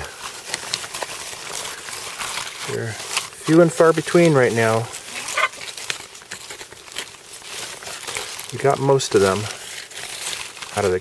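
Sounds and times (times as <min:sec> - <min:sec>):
cabbage leaves rustling: 0:00.0 - 0:11.0.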